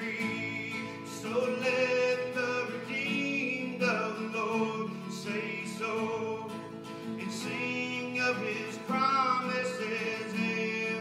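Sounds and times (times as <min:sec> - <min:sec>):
man singing worship song: 0:00.0 - 0:06.6, 0:07.2 - 0:11.0
acoustic guitar: 0:00.0 - 0:11.0.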